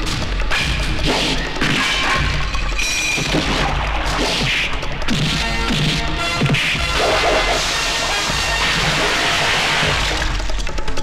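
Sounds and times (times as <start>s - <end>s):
loud background score: 0.0s - 11.0s.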